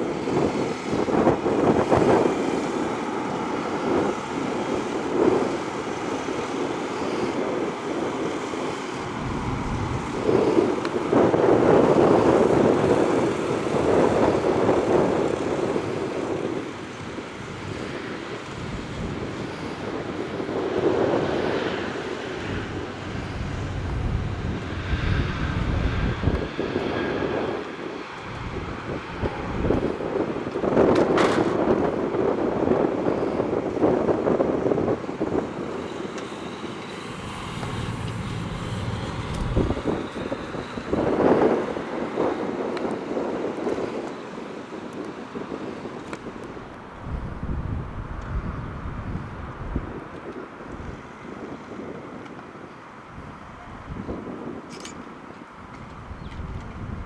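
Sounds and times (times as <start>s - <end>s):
vehicles passing by: 0.0s - 50.0s
sharp click: 54.7s - 55.0s.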